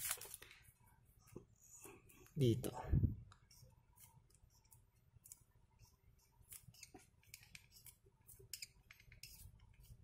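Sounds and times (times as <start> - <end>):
marker scratching on glossy sheet: 3.4 - 10.0.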